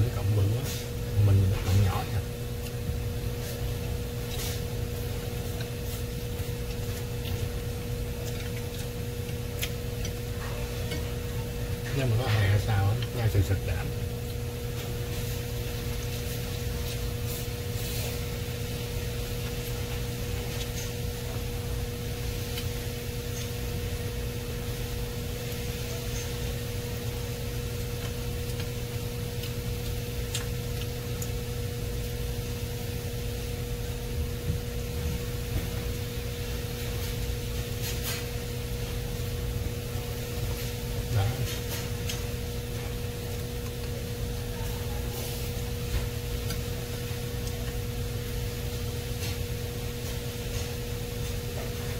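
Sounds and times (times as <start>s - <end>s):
appliance humming with hiss: 0.0s - 51.9s.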